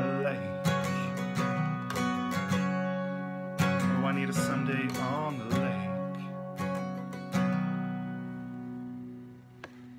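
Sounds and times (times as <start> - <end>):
acoustic guitar chord ringing: 0.0 - 9.9.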